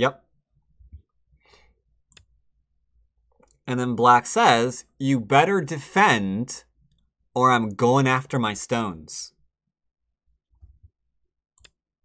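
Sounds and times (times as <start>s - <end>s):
computer mouse click: 11.6s - 11.8s.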